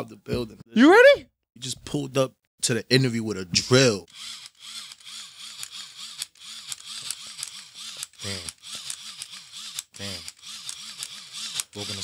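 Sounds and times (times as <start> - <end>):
cordless drill pulsing: 4.1 - 12.0.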